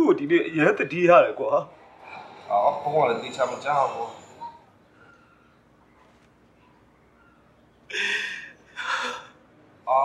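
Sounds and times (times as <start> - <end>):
person gasping: 7.9 - 9.4.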